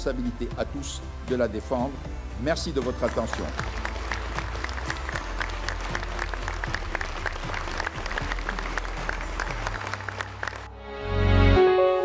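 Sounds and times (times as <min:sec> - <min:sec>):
music playing: 0:00.0 - 0:12.0
crowd applauding: 0:02.7 - 0:10.7.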